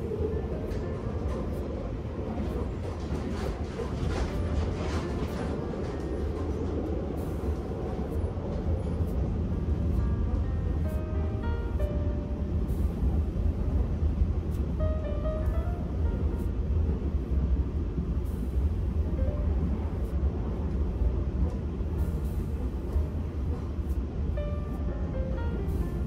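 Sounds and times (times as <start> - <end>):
electric train rumbling: 0.0 - 26.0
music: 0.0 - 26.0.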